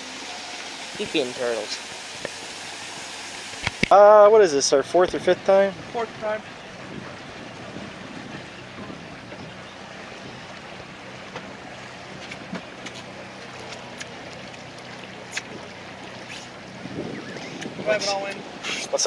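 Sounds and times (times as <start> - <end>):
boat motor humming: 0.0 - 19.0
water washing along hull: 0.0 - 19.0
wind on microphone: 5.4 - 12.7, 15.4 - 19.0.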